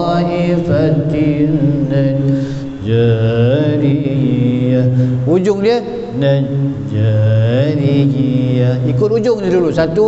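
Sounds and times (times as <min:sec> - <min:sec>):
man chanting solo: 0:00.0 - 0:10.0.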